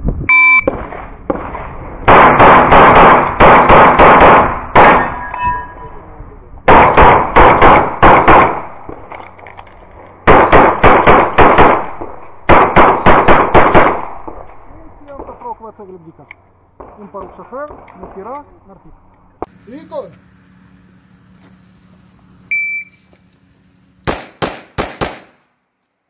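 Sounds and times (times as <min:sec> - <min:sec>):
shot timer beep: 0:00.3 - 0:00.7, 0:22.5 - 0:23.1
pistol firing rapid shots: 0:00.7 - 0:05.0, 0:06.7 - 0:08.7, 0:10.3 - 0:14.3, 0:24.0 - 0:25.4.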